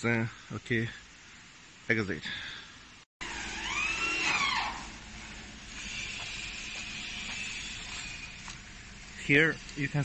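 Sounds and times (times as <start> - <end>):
electric drill whining: 3.2 - 5.1.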